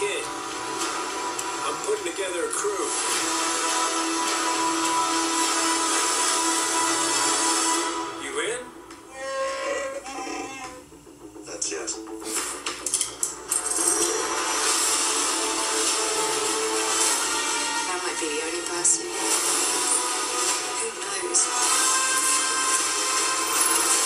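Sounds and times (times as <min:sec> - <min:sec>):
trailer music through speakers: 0:00.0 - 0:09.2, 0:10.7 - 0:24.0.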